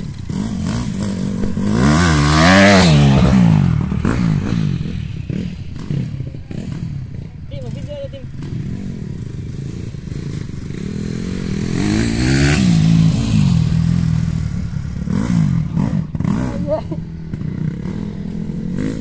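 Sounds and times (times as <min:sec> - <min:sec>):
dirt bike engines revving: 0:00.0 - 0:19.0.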